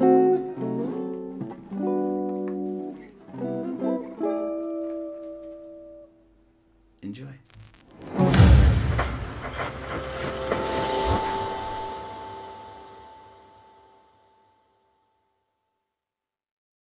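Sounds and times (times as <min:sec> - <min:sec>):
electric guitar chords: 0:00.0 - 0:06.1, 0:07.7 - 0:14.6.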